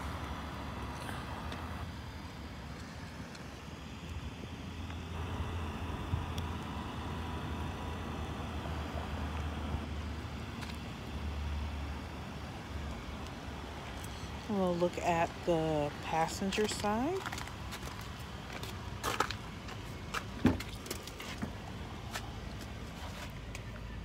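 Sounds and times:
low outdoor rumble: 0:00.0 - 0:24.0.

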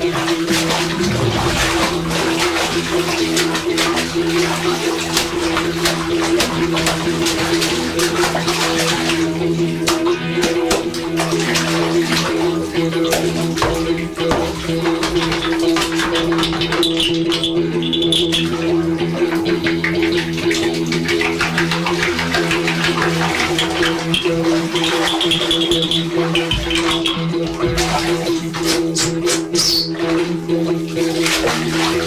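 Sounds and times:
water splashing and crackling: 0:00.0 - 0:32.0
low drone: 0:00.6 - 0:04.2.

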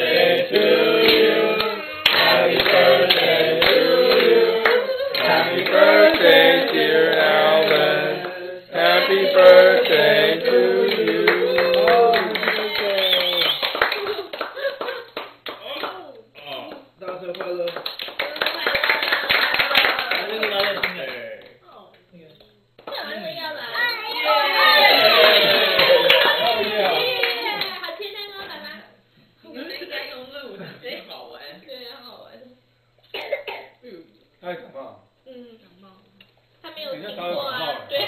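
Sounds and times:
small group clapping: 0:00.0 - 0:21.6, 0:22.8 - 0:23.2, 0:24.5 - 0:28.0.

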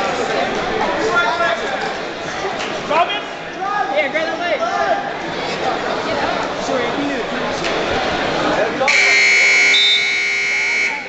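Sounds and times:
scoreboard buzzer: 0:08.9 - 0:11.0.

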